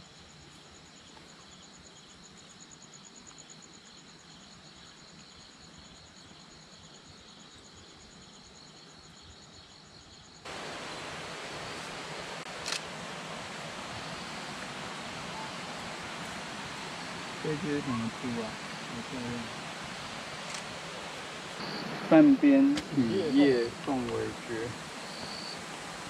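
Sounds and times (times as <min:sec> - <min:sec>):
faint hiss: 0:00.0 - 0:26.0
night insects pulsing: 0:00.0 - 0:26.0
running creek water: 0:10.4 - 0:26.0.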